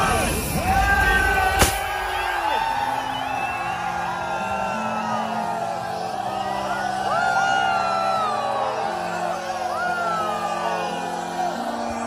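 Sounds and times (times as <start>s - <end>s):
crowd cheering and whooping: 0.0s - 12.0s.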